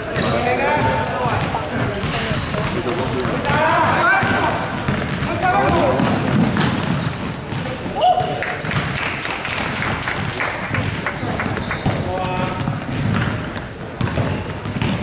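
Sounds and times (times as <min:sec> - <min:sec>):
sneaker squeaks: 0:00.0 - 0:09.0, 0:11.4 - 0:15.0
basketball dribbling on wooden court: 0:00.1 - 0:09.0, 0:09.6 - 0:15.0.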